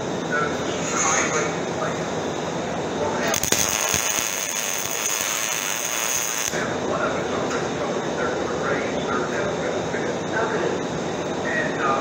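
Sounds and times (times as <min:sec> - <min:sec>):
welding arc crackling: 0:03.2 - 0:06.7.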